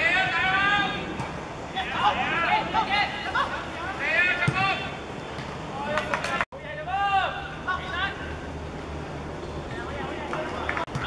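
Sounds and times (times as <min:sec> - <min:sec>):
footballers shouting: 0:00.0 - 0:05.1.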